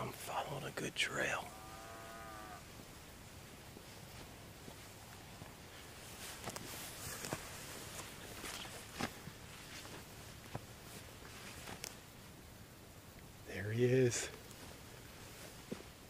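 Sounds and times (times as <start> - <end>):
footsteps through brush: 2.4 - 12.1.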